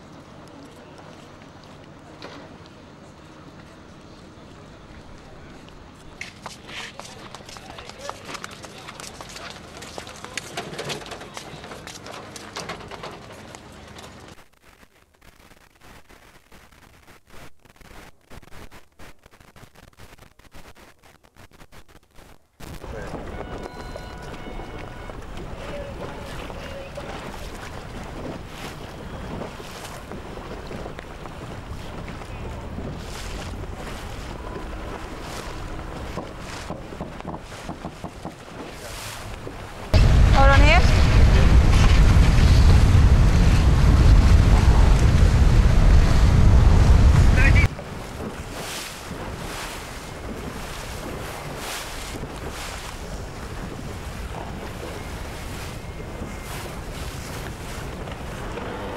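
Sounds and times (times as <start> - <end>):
water rushing along hull: 22.8 - 58.9
wind buffeting microphone: 39.4 - 58.9.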